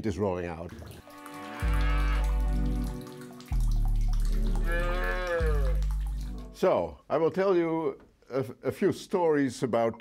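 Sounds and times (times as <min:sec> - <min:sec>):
cow mooing: 0:04.6 - 0:05.8.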